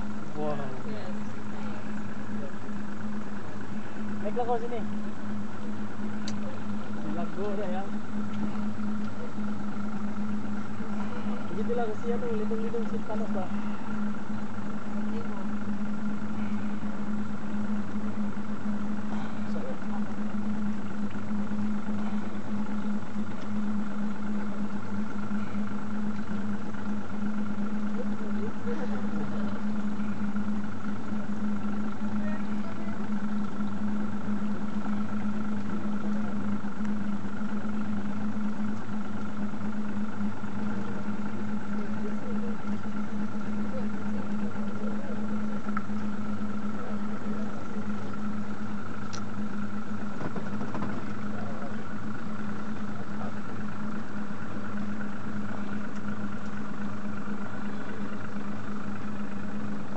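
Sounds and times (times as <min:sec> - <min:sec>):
boat engine idling: 0:00.0 - 0:59.9.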